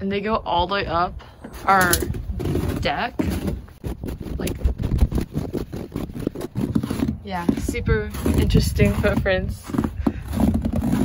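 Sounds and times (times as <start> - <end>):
footsteps on snowy wooden stairs: 1.4 - 11.0.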